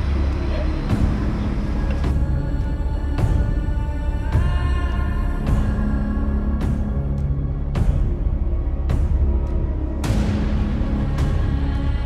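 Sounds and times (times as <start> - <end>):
indistinct voices: 0.0 - 7.5.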